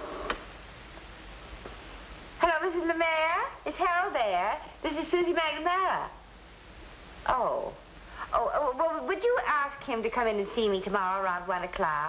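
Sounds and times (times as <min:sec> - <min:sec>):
television soundtrack hiss: 0:00.0 - 0:12.0.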